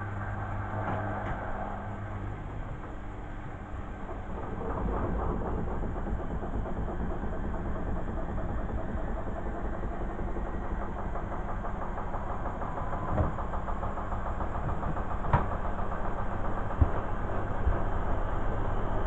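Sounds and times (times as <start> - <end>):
washing machine rumbling: 0.0 - 19.0.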